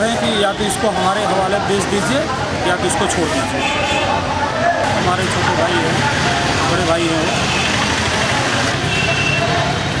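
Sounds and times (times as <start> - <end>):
vehicle engines running: 4.4 - 10.0.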